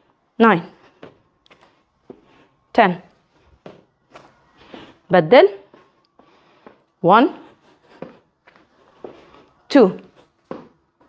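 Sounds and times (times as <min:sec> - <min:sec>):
sneaker footsteps on rubber floor: 0:00.6 - 0:11.0.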